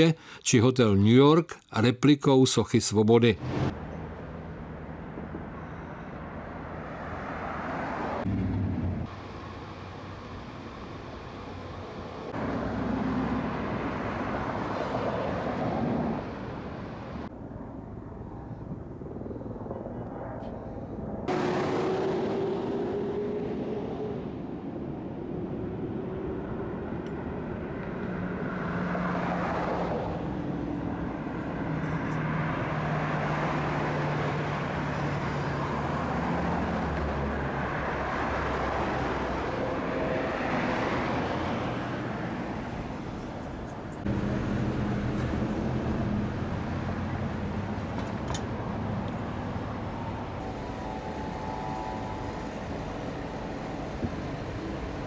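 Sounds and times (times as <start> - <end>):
cars passing: 3.3 - 17.6, 21.2 - 55.0.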